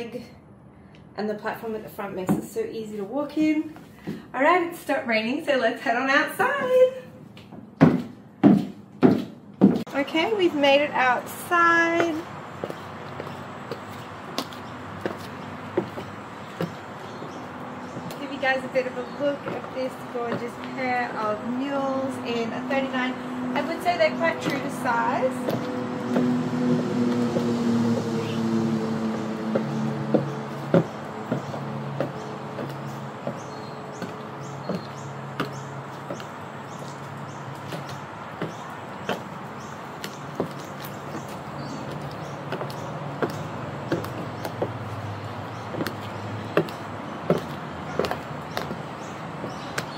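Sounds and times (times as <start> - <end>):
high heels clicking on wet paving: 11.9 - 21.6, 23.6 - 49.9.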